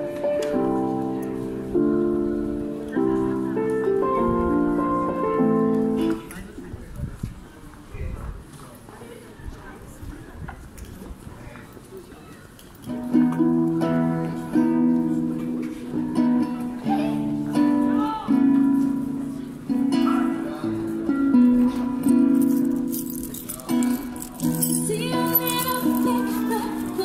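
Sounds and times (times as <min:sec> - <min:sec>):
woman singing: 0:24.6 - 0:27.0.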